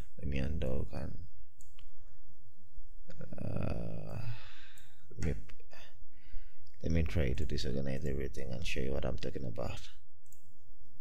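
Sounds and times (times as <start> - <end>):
computer mouse clicks: 10.2 - 10.5.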